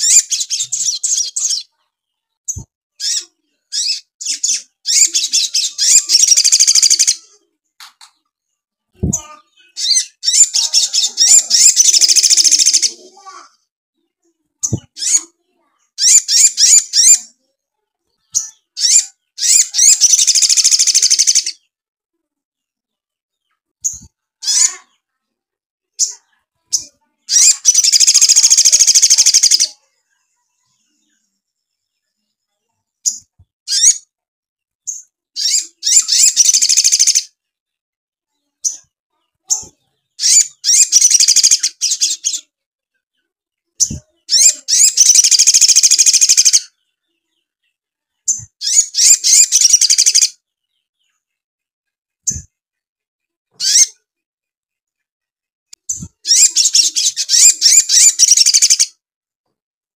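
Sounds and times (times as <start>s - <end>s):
bird singing rapid high song: 0.0s - 13.5s, 14.6s - 17.4s, 18.1s - 21.8s, 26.0s - 32.4s, 33.0s - 34.2s, 34.8s - 37.4s, 38.3s - 51.4s, 53.5s - 54.1s, 55.7s - 59.0s
bird chips: 18.4s - 21.6s, 26.0s - 29.7s, 34.9s - 37.3s, 39.5s - 42.5s, 43.8s - 46.7s, 48.3s - 50.3s, 53.6s - 54.0s, 55.9s - 58.9s.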